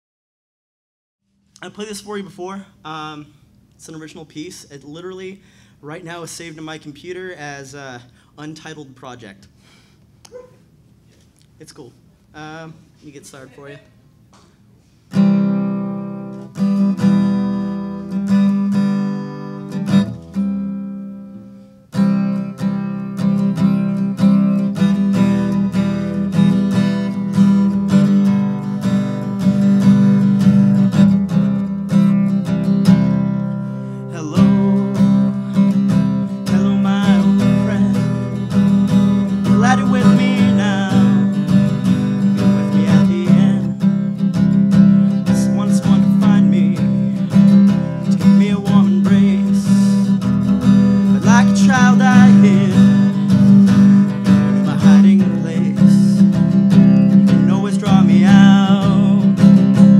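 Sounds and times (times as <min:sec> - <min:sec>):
acoustic guitar strumming: 0:15.1 - 0:59.9.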